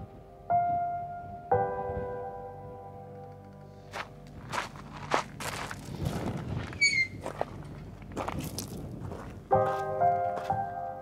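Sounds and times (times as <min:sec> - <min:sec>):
footsteps on gravel: 0:03.8 - 0:10.7
brief high squeak: 0:06.8 - 0:07.2.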